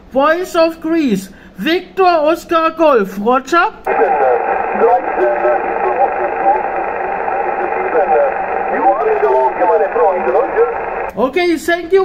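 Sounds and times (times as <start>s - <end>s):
band noise hiss: 3.9s - 11.1s
faint radio speech: 3.9s - 11.1s.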